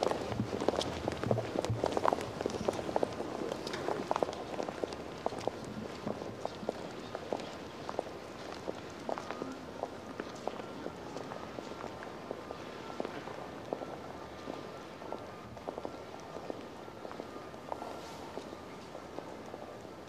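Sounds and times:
footsteps on cobblestones: 0.0 - 20.0
open-air murmur: 0.0 - 20.0.

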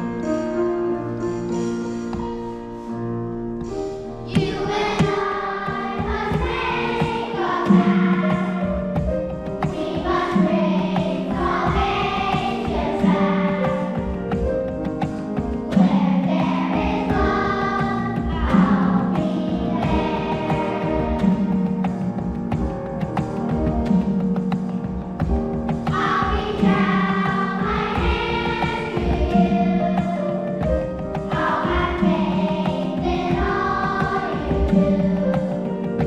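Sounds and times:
instrumental and drum accompaniment: 3.6 - 36.0
choir singing held chords: 4.2 - 22.6, 25.6 - 35.8.

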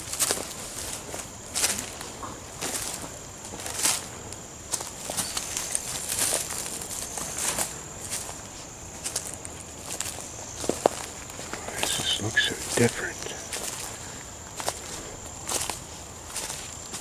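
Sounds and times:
footsteps on dry leaves: 0.0 - 17.0.

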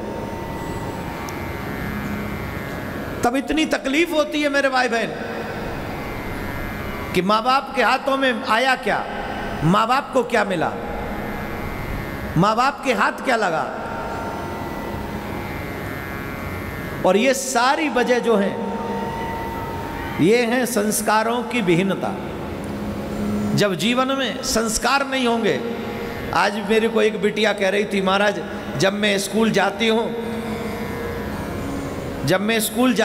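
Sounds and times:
faint steady tones: 0.0 - 33.0
steady background noise: 0.0 - 33.0.

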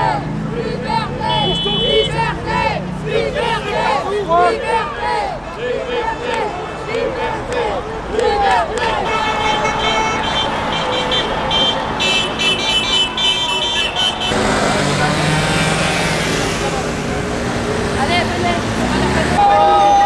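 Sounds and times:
crowd noise: 0.0 - 20.0
street traffic noise: 0.0 - 20.0
car horns honking: 0.9 - 4.8, 8.8 - 20.0.

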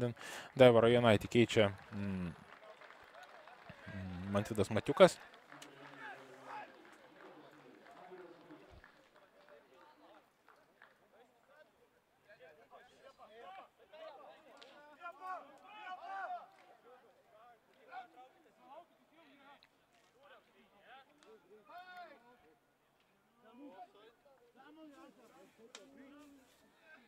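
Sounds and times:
faint shouts of players: 5.5 - 8.9, 12.8 - 18.4, 20.8 - 22.4.

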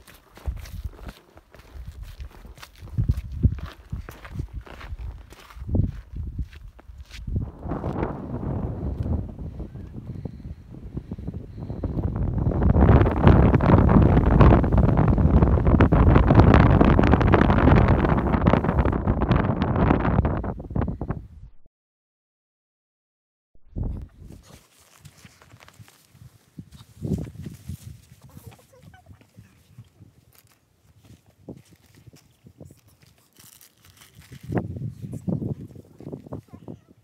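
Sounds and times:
footsteps on rocky trail: 0.0 - 7.8
wind buffeting microphone: 1.7 - 21.5, 23.7 - 24.5, 34.2 - 37.0.

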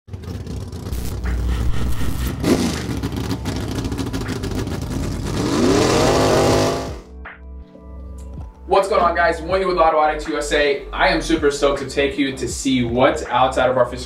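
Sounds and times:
car engine revving: 0.1 - 7.1
music: 0.9 - 14.0.

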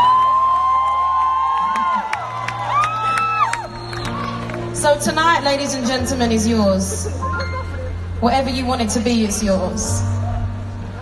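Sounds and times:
crowd cheering: 0.0 - 5.1.

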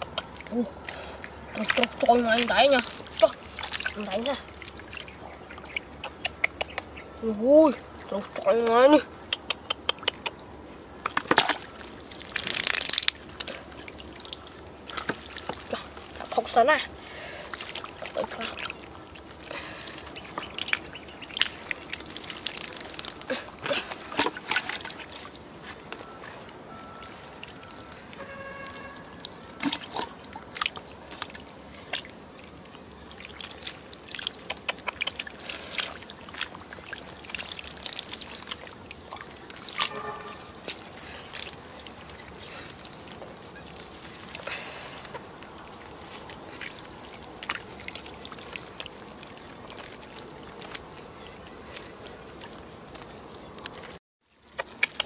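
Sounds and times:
sharp wet clicks and smacks: 0.0 - 7.0, 8.4 - 10.4, 11.0 - 16.4, 20.0 - 23.3, 32.7 - 40.0, 45.0 - 55.0
mud and water sloshing: 0.0 - 55.0
hands digging in wet mud: 33.1 - 55.0.

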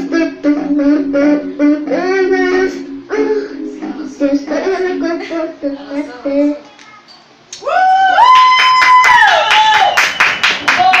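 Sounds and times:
hands clapping quickly: 8.4 - 11.0.

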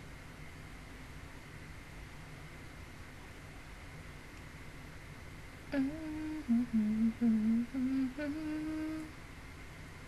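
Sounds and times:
woman humming: 5.7 - 9.1.

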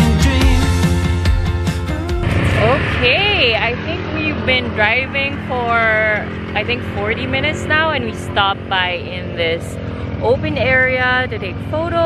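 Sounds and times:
atv engines humming: 0.0 - 12.0
woman talking: 2.5 - 12.0.

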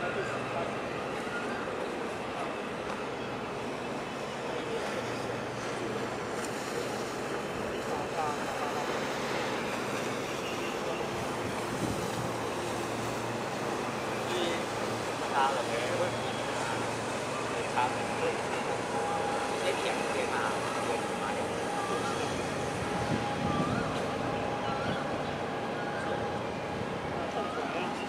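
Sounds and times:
faint low ship hum: 0.0 - 28.0
wind: 0.0 - 28.0
water washing: 0.6 - 28.0.

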